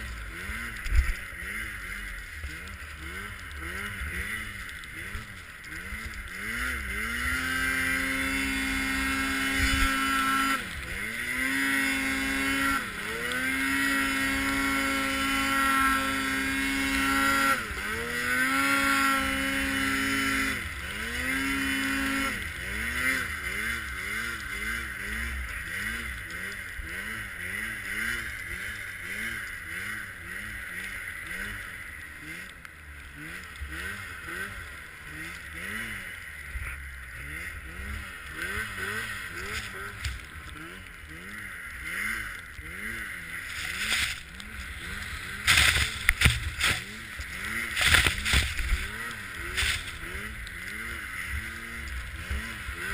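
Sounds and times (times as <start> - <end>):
snowmobile engine revving: 0.0 - 52.9.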